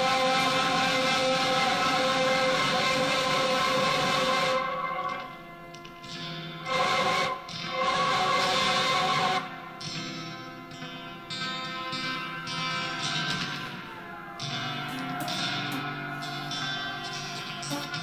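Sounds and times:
electric guitar with delay: 0.0 - 18.0.

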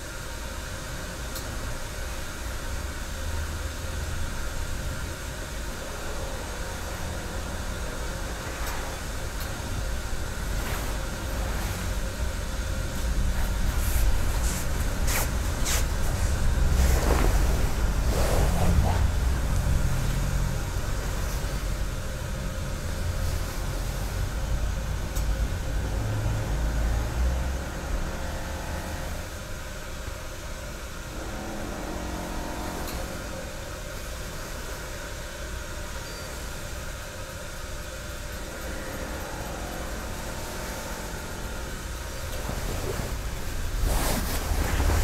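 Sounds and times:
low rumble and hum: 0.0 - 34.8, 35.8 - 45.0.

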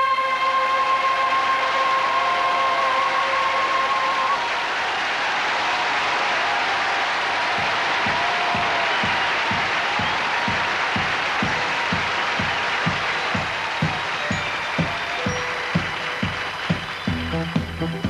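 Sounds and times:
audience applauding: 0.0 - 18.0
low regular beat: 7.5 - 14.2, 15.8 - 18.0.

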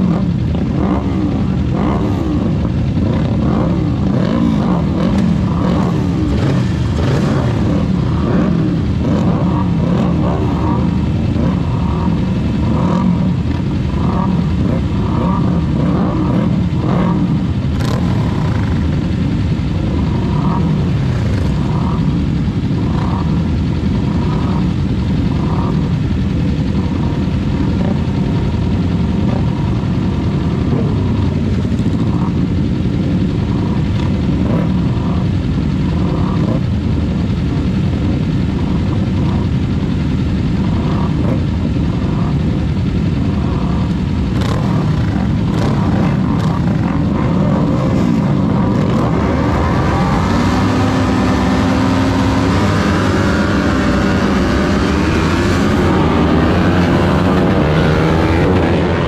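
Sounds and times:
motorcycle engines idling: 0.0 - 59.0.

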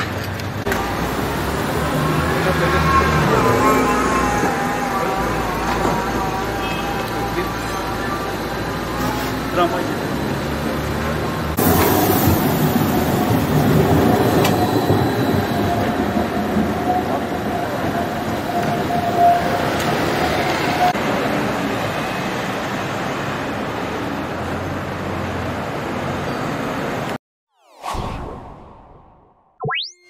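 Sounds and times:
tram rumbling on street tracks: 0.0 - 27.2
held tone: 29.6 - 30.0.

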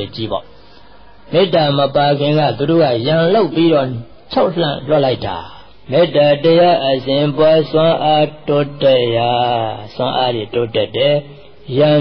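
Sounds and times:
man chanting: 1.3 - 12.0.

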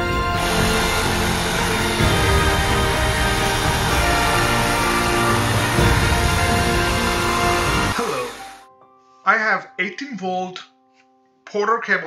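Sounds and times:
reciprocating saw running: 0.0 - 8.6
music: 0.0 - 12.0.

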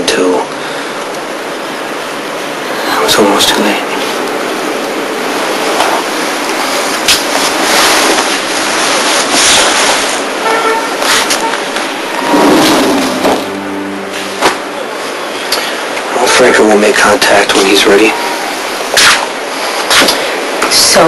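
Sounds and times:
car horns: 10.4 - 15.6
passing cars rushing: 11.9 - 16.2.

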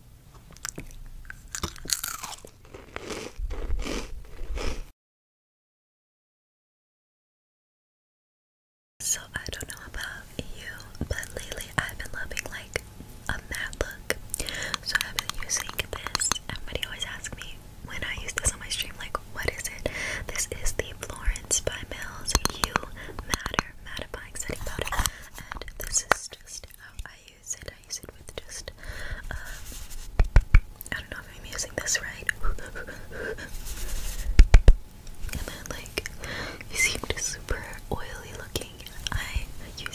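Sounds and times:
close whispering: 35.4 - 39.9.

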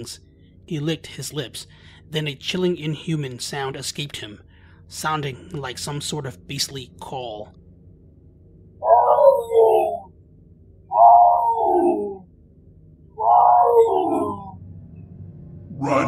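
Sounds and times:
low steady drone: 0.0 - 16.0
tiger calling: 8.8 - 10.1, 10.9 - 12.2, 13.2 - 14.6, 15.7 - 16.0.

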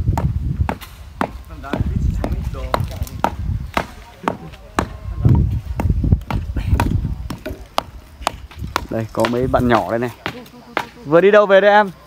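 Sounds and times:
wooden rammers pounding soil: 0.0 - 12.0.

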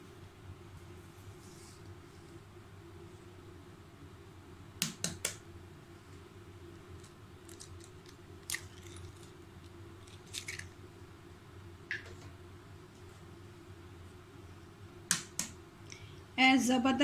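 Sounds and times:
eggshell clicks and crackles: 6.8 - 10.8.

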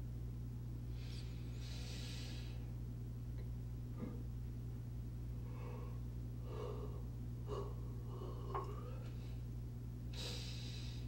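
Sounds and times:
low electrical hum: 0.0 - 11.0
faint breath sounds: 0.9 - 2.7, 5.4 - 9.5, 10.1 - 11.0
hissing breath: 1.0 - 2.6, 10.2 - 11.0.

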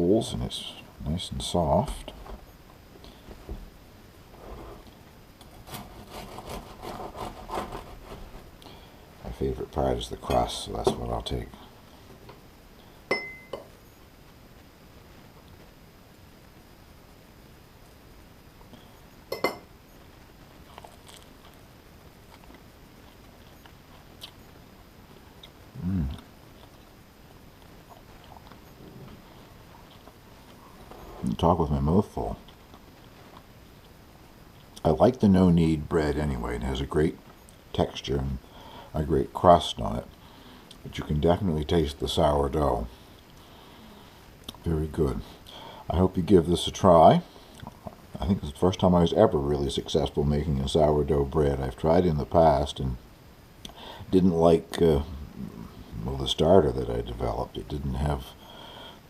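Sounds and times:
closed-mouth hum: 0.0 - 59.0
bread knife sawing through crust: 5.5 - 8.5
chewing crusty bread: 20.6 - 21.6.

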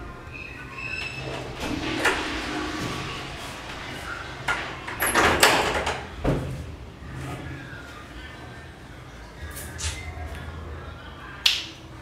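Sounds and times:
low steady hum: 0.0 - 12.0
sharp snap: 11.4 - 11.8.

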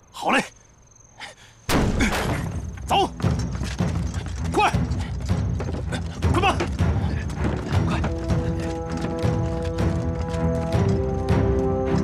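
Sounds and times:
clattering hoof-like beat: 3.2 - 12.0.

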